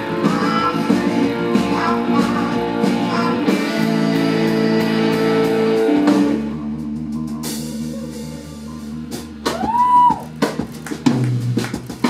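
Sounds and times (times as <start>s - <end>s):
blues-rock band playing: 0.0s - 12.0s
drum hits: 9.2s - 12.0s.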